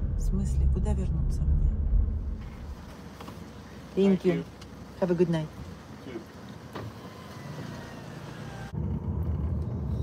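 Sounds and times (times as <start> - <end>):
low rumble: 0.0 - 2.9
car engine and tyre noise: 1.8 - 10.0.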